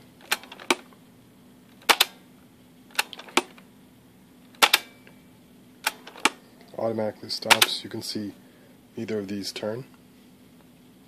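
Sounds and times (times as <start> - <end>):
cassette transport clicking: 0.2 - 0.9, 1.8 - 2.2, 2.9 - 3.6, 4.5 - 4.9, 5.8 - 6.4, 7.4 - 7.8.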